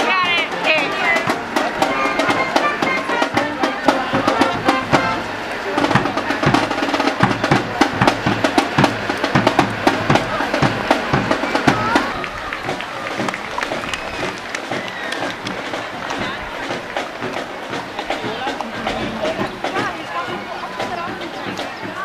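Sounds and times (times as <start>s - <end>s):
crowd noise: 0.0s - 22.0s
parade music with drumbeat: 0.0s - 22.0s
people talking: 0.0s - 22.0s.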